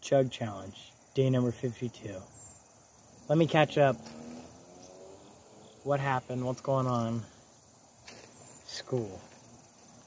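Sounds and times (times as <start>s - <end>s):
crickets singing: 0.0s - 10.0s
person speaking: 5.8s - 7.4s, 8.6s - 9.4s.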